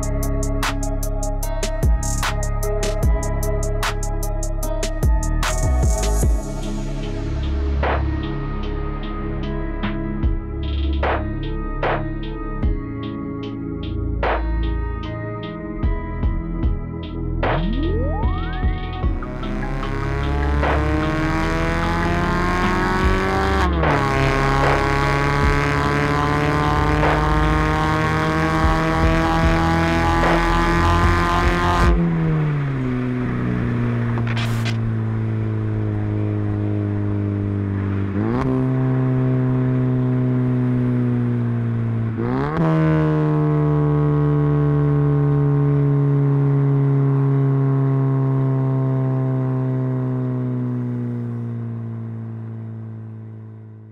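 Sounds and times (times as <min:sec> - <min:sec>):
car engine and exhaust revving: 0:00.0 - 0:53.9.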